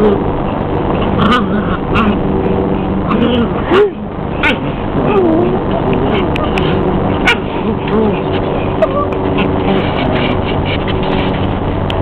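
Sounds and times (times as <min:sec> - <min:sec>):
dogs vocalizing while playing: 0:00.0 - 0:12.0
steady background noise: 0:00.0 - 0:12.0.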